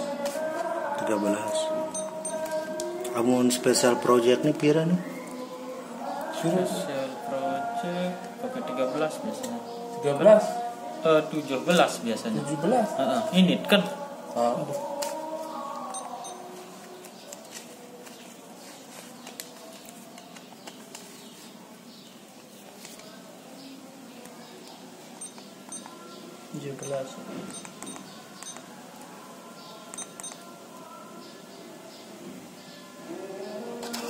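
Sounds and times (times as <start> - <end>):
short high keypad beeps: 1.9 - 2.4, 25.2 - 25.9, 26.8 - 28.6, 30.0 - 30.4.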